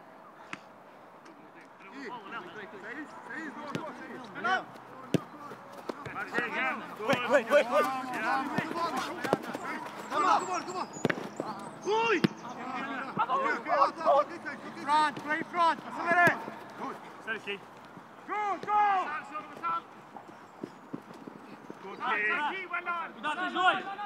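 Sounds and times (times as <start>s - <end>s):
players shouting: 1.8s - 20.2s, 21.4s - 24.0s
football kick thuds: 3.7s - 4.0s, 8.1s - 10.0s, 11.0s - 11.6s, 12.2s - 12.4s.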